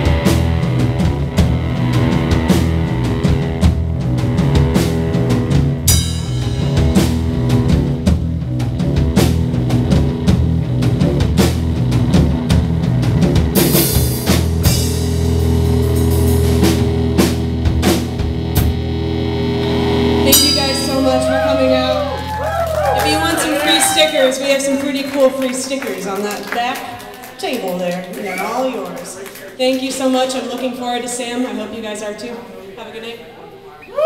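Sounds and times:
held guitar and bass chord: 0.0s - 24.6s
rock band playing live: 0.0s - 31.2s
cymbal crashes: 20.2s - 22.0s.

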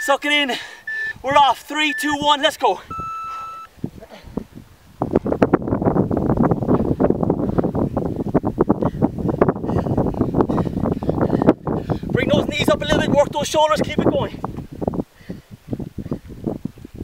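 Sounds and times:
interval timer beep: 0.0s - 0.2s, 0.9s - 2.3s, 2.9s - 3.7s
wind buffeting microphone: 0.8s - 17.0s.

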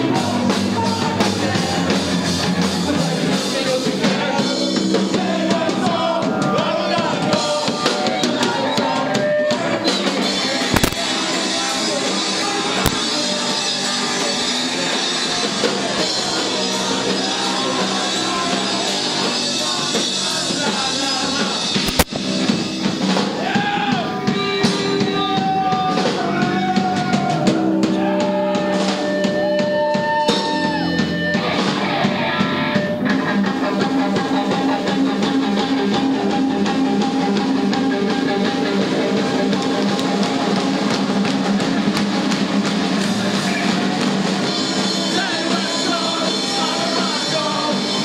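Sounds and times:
voices singing together: 0.0s - 22.0s, 23.2s - 48.0s
drum kit with cymbal hits: 0.0s - 48.0s
electric guitar: 0.0s - 48.0s
pop-punk band playing: 0.0s - 48.0s
sharp click: 10.7s - 11.0s, 21.9s - 22.2s.

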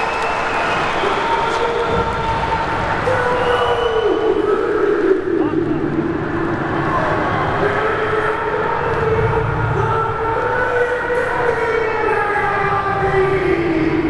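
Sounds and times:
echoing arena din: 0.0s - 14.0s
drawn-out wavering voice: 3.1s - 5.8s.

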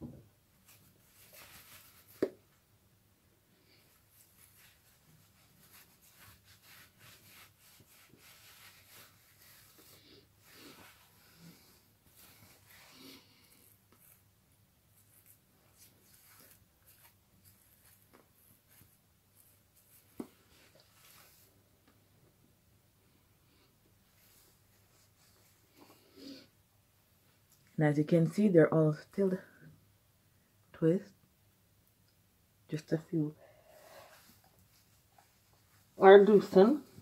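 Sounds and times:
fingers rubbing through hair: 0.6s - 2.5s, 3.8s - 14.3s, 14.9s - 21.5s.

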